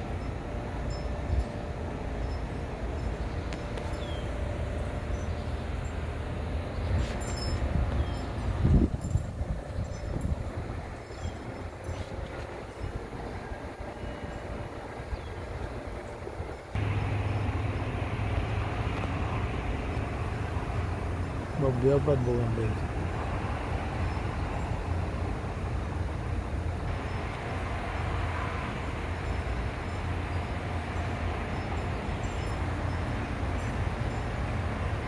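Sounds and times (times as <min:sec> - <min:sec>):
low outdoor rumble: 0:00.0 - 0:35.0.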